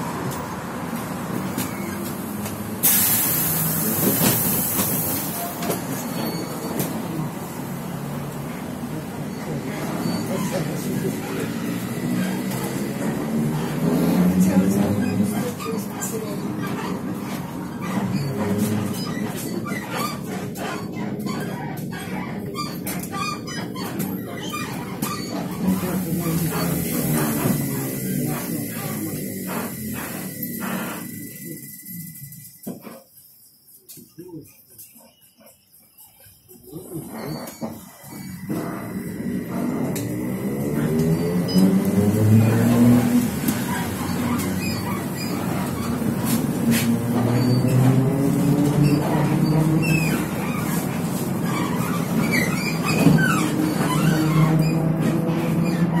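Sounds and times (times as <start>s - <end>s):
trolleybus electric drive whine: 0.0s - 34.2s, 34.8s - 56.0s.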